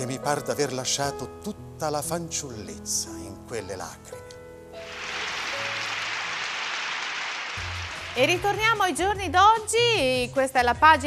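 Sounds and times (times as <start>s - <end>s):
soft background music: 0.0s - 6.2s, 7.6s - 11.0s
audience applause: 4.9s - 8.9s.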